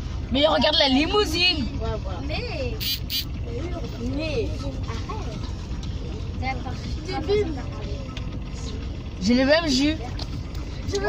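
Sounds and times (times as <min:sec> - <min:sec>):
faint voices talking: 0:00.0 - 0:11.0
road and engine rumble: 0:00.0 - 0:11.0.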